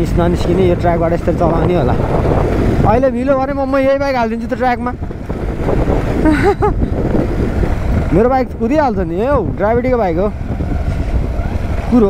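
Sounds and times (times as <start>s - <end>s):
motorcycle engine running: 0.0s - 12.0s
wind buffeting microphone: 0.0s - 12.0s.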